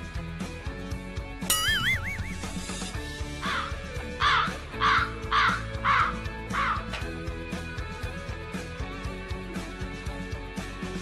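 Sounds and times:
background music with guitar: 0.0s - 11.0s
warbling tone: 1.5s - 2.8s
crow cawing: 3.4s - 6.8s.

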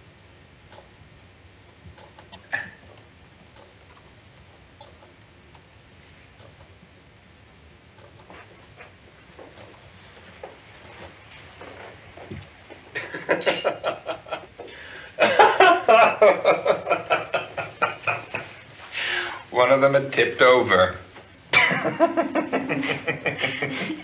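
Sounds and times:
man laughing: 13.0s - 14.6s, 15.2s - 18.5s, 21.5s - 24.0s.

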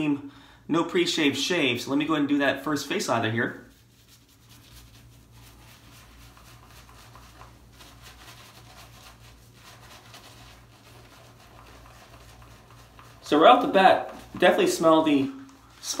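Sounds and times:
low steady hum: 0.0s - 16.0s
shaving brush scrubbing: 3.0s - 16.0s.

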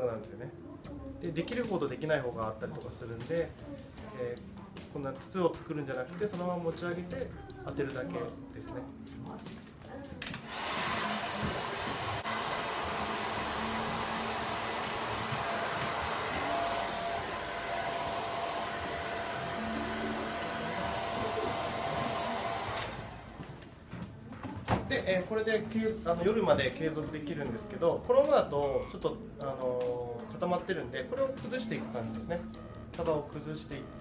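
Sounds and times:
hair dryer blowing: 10.2s - 23.6s.

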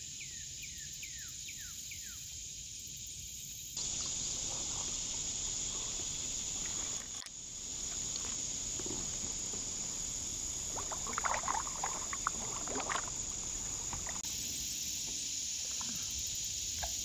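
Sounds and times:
kayak paddle splashing in water: 3.8s - 14.2s
high insect buzz: 3.8s - 17.0s.

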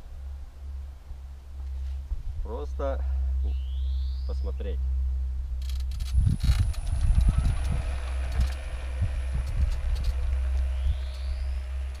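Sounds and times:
electric motor whining: 5.6s - 12.0s.

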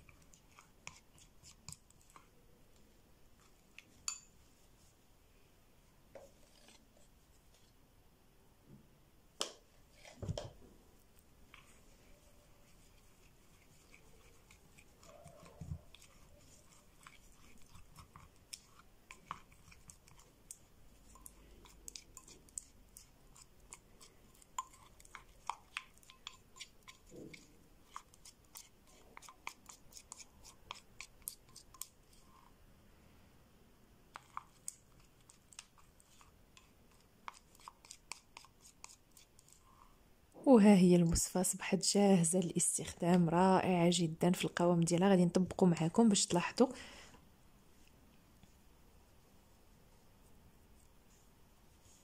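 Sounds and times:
plastic spoon scraping ceramic bowl: 0.0s - 2.4s, 6.1s - 7.7s, 12.7s - 32.5s, 34.1s - 39.6s.

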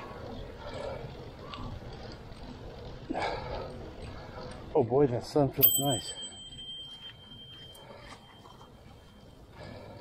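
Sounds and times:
wind and tyre noise: 0.0s - 10.0s
bicycle bell ringing: 5.6s - 9.4s.

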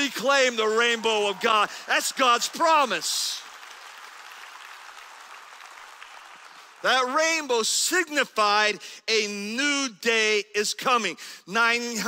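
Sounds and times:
crowd clapping: 0.0s - 7.6s.

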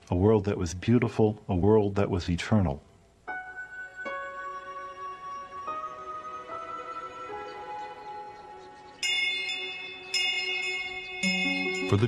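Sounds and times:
bell ringing: 9.0s - 12.0s.

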